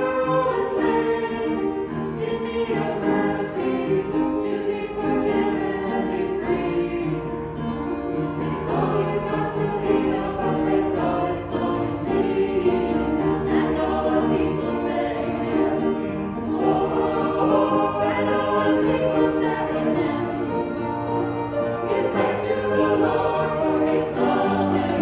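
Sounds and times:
choir singing: 0.0s - 25.0s.

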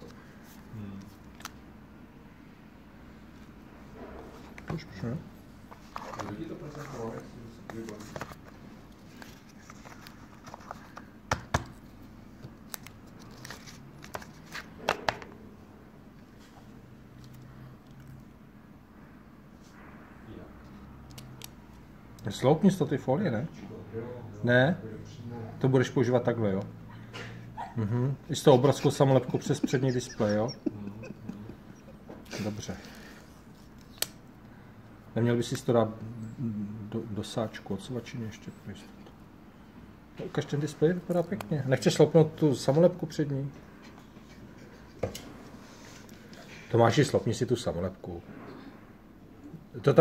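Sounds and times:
faint background noise: 0.0s - 50.0s.

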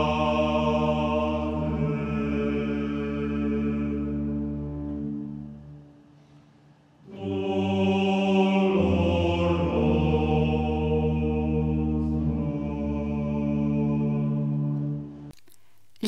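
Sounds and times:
voices chanting long notes: 0.0s - 6.1s, 7.0s - 15.3s.

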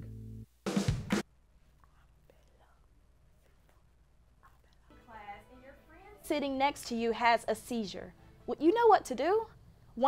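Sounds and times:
faint low hum: 1.3s - 6.2s.

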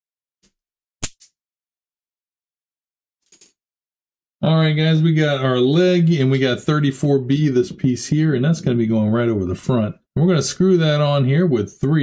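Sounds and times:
sharp click: 0.4s - 1.4s.

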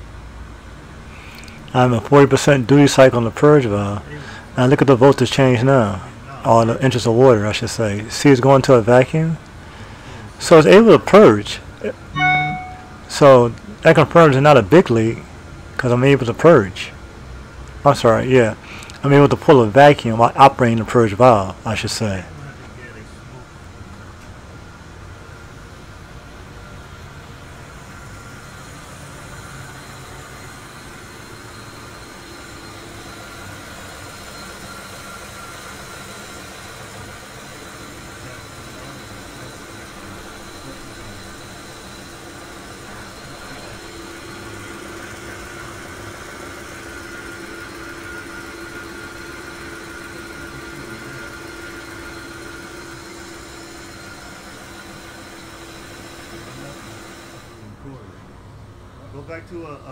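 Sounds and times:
steady whine: 22.2s - 57.8s.

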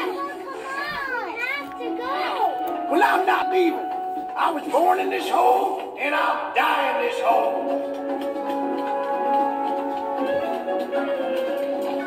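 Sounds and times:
high-pitched cartoon voices chattering: 0.0s - 2.7s.

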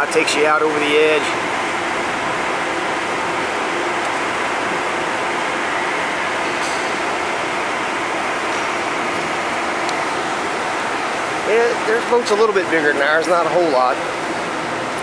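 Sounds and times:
steady rushing noise: 0.0s - 15.0s.

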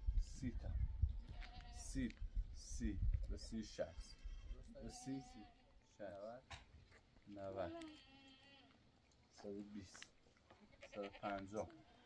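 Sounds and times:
sheep bleating: 1.3s - 1.9s, 3.9s - 5.8s, 7.5s - 8.8s, 10.6s - 12.0s.

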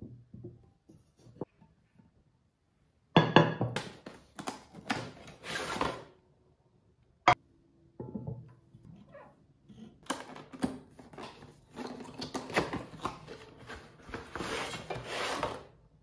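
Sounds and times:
cardboard scraping and rustling: 11.0s - 15.7s.

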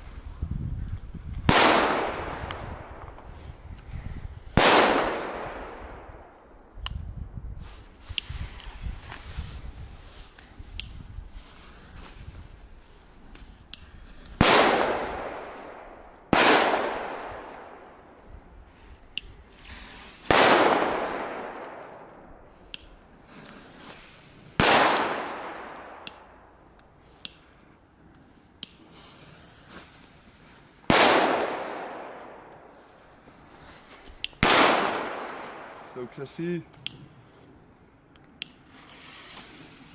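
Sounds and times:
firecracker bangs echoing: 4.5s - 6.1s, 14.4s - 18.0s, 20.2s - 22.1s, 34.4s - 36.6s.

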